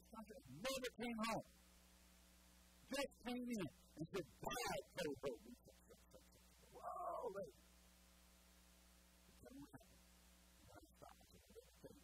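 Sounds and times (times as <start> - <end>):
faint room hum: 0.0 - 12.0
man crying out: 6.8 - 7.5.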